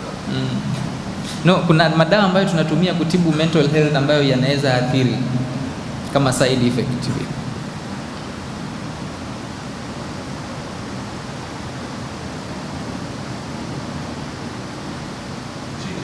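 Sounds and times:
microphone background hiss: 0.0s - 16.0s.

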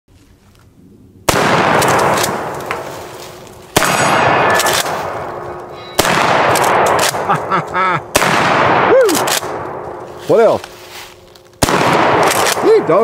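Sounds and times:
shotgun shots echoing: 1.3s - 10.6s, 11.6s - 13.0s
steel targets ringing: 4.0s - 6.9s.

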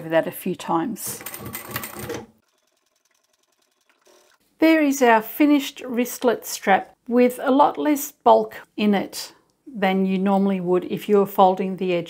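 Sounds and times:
sewing machine stitching: 1.1s - 4.4s.

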